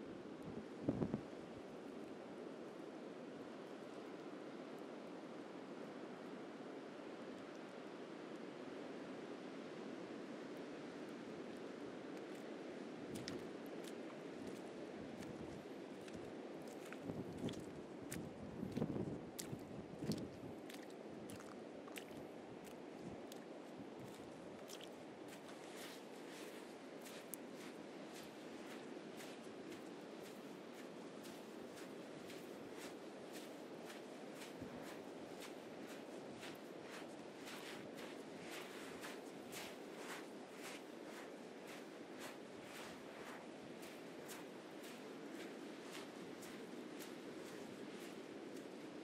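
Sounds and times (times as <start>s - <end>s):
footsteps crunching in sand: 12.2s - 49.0s.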